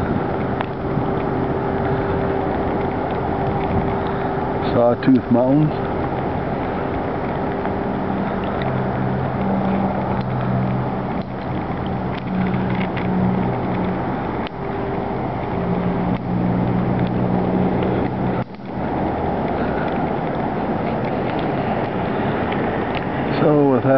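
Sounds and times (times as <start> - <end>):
constant background noise: 0.0 - 23.9
engine-like mechanical hum: 0.0 - 23.9.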